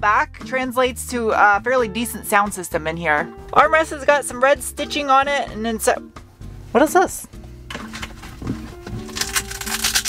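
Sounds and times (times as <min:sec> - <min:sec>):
background music: 0:00.0 - 0:10.0
crackling rasp of handling noise: 0:07.7 - 0:10.0.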